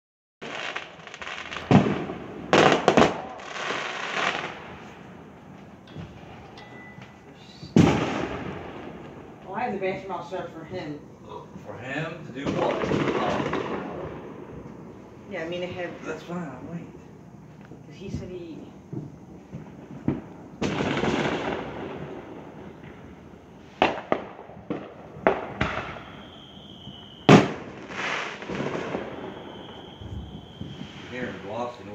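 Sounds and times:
fireworks crackling pops: 0:00.4 - 0:06.6, 0:07.3 - 0:10.0, 0:12.4 - 0:15.0, 0:17.0 - 0:31.9
loud firework bangs: 0:00.4 - 0:06.6, 0:07.6 - 0:10.1, 0:11.9 - 0:16.1, 0:18.9 - 0:31.9.

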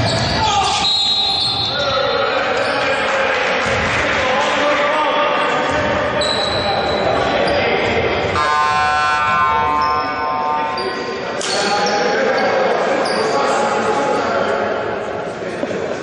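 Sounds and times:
sneakers squeaking: 0:00.0 - 0:02.8, 0:05.7 - 0:13.5
players' voices echoing: 0:00.0 - 0:16.0
buzzer tone: 0:08.3 - 0:10.8.

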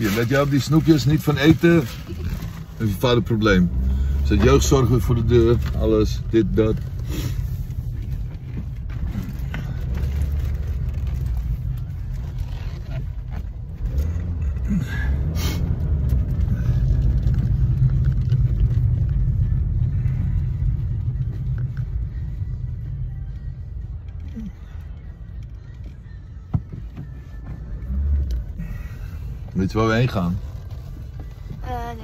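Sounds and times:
car engine and tyres rumbling: 0:00.0 - 0:32.0.

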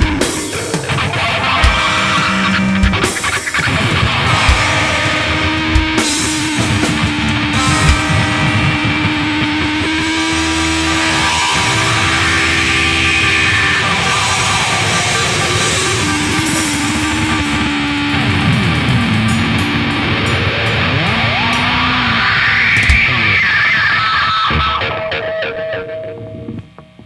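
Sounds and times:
drums: 0:00.0 - 0:27.0
heavy electric guitar: 0:00.0 - 0:27.0.

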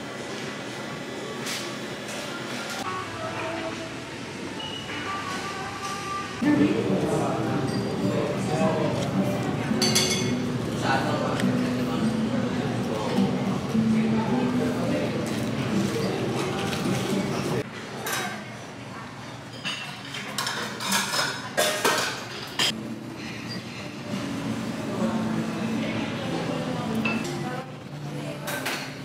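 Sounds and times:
dining-room chatter: 0:00.9 - 0:29.0
dishes and lids clinking: 0:19.5 - 0:22.8.

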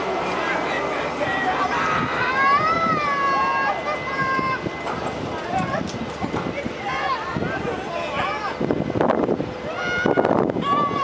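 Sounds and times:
clatter of voices: 0:00.0 - 0:11.0.

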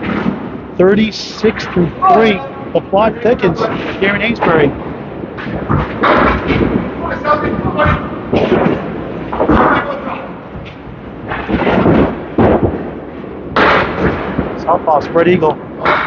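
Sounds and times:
bowling balls and pins crashing: 0:00.0 - 0:00.8, 0:03.2 - 0:14.8, 0:15.5 - 0:16.0
people talking: 0:00.8 - 0:04.8, 0:07.0 - 0:08.2, 0:09.5 - 0:10.4, 0:14.6 - 0:16.0.

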